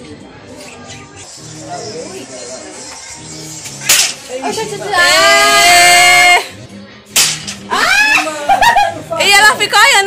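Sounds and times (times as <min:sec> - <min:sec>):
sharp crack: 0:03.7 - 0:04.3, 0:07.1 - 0:07.7.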